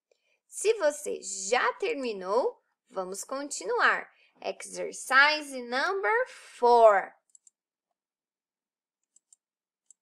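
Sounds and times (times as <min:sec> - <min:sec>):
computer mouse clicks: 0:07.2 - 0:07.6, 0:09.0 - 0:10.0.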